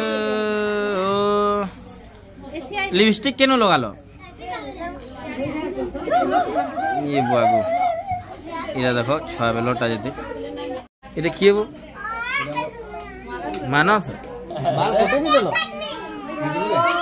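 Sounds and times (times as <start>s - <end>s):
children chattering: 0.0s - 17.0s.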